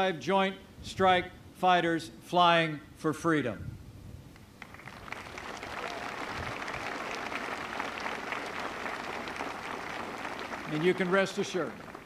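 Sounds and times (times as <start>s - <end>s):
large crowd applauding: 4.6s - 12.0s.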